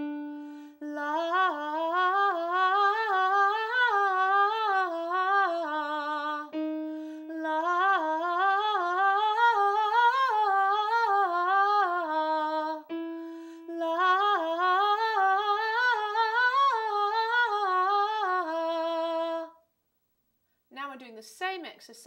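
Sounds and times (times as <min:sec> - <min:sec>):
woman singing vocal exercise: 0:00.7 - 0:06.6, 0:13.6 - 0:19.6.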